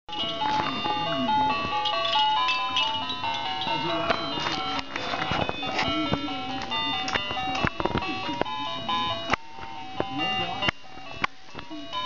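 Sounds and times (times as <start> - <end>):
electronic toy tune: 0.1 - 12.0.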